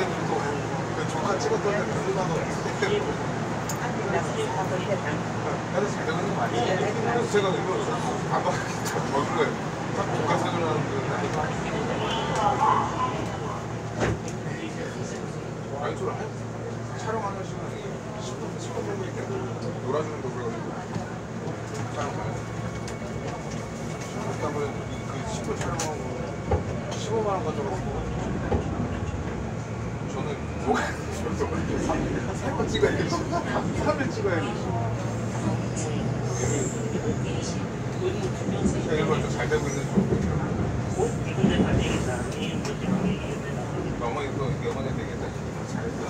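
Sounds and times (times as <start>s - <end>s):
indistinct passenger chatter: 0.0s - 46.0s
train wheels rumbling: 21.0s - 46.0s.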